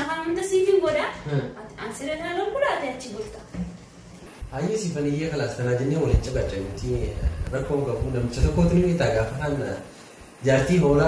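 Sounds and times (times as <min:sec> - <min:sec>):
woman speaking: 0:00.0 - 0:03.6
man talking: 0:04.5 - 0:11.0.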